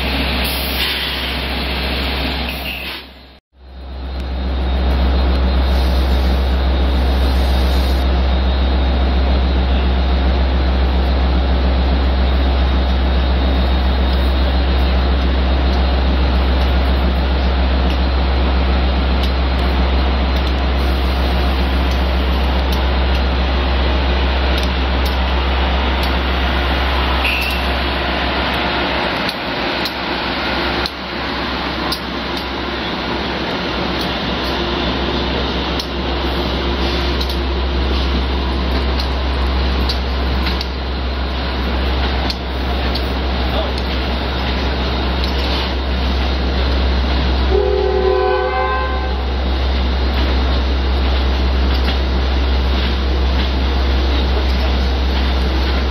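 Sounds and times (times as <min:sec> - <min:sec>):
wheels rushing on rail: 0:00.0 - 0:55.9
locomotive motor hum: 0:03.6 - 0:55.9
train horn chord: 0:47.5 - 0:49.4.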